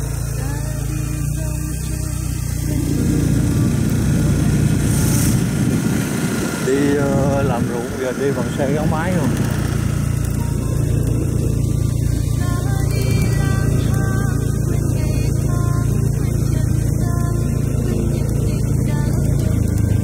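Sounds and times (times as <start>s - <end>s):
motorbike engine running steadily: 0.0s - 20.0s.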